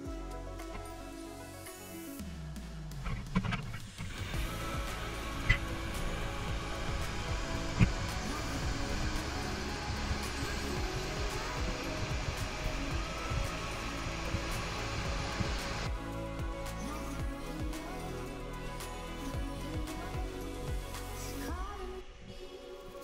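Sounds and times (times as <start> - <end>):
background music: 0.0 - 23.0
waterfall rushing: 4.0 - 17.2.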